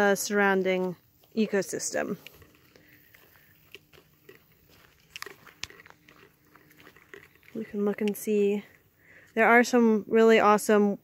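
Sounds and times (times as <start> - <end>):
footsteps crunching on gravel: 0.5 - 9.4.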